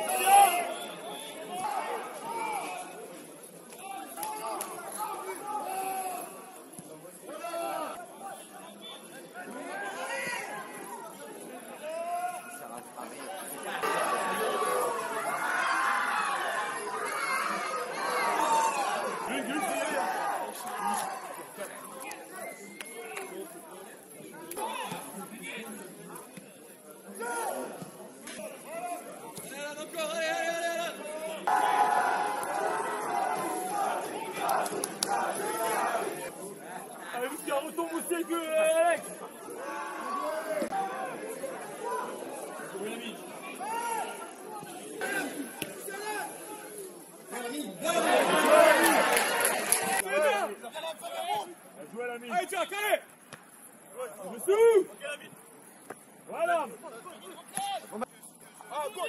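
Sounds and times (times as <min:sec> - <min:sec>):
players and spectators shouting: 0:00.0 - 0:12.6, 0:13.5 - 0:23.4, 0:27.1 - 0:27.8, 0:28.4 - 0:53.1
crowd noise: 0:00.0 - 0:59.0
voices shouting: 0:13.8 - 0:21.6, 0:31.4 - 0:36.3.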